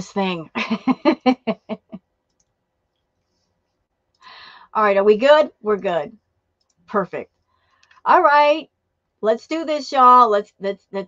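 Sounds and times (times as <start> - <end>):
woman laughing: 0.6 - 2.0.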